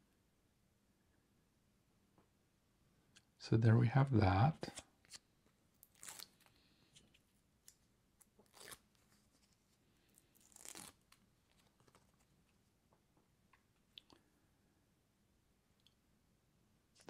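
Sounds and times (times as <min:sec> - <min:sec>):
tape backing tearing: 0:05.8 - 0:06.5, 0:08.4 - 0:09.5, 0:10.4 - 0:12.3.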